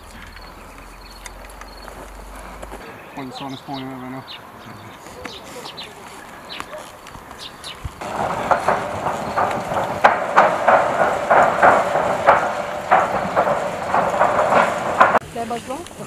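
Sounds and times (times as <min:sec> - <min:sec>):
footsteps on metal bridge: 0:00.0 - 0:15.8.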